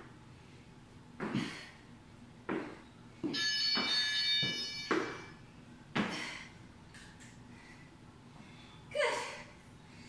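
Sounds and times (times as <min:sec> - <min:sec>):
feet thudding on rubber floor: 0:01.1 - 0:01.7, 0:02.4 - 0:06.4.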